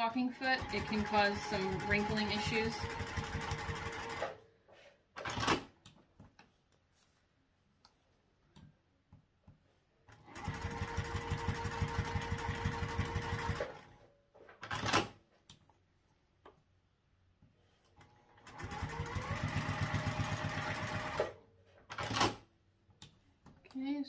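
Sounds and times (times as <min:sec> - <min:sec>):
sewing machine stitching: 0:00.4 - 0:04.4, 0:05.2 - 0:05.7, 0:10.1 - 0:15.2, 0:18.0 - 0:22.4
fabric being handled: 0:06.1 - 0:08.4.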